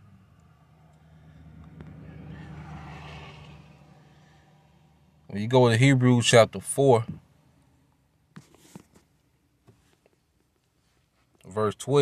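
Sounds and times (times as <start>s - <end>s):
vehicle passing: 0.0s - 6.0s.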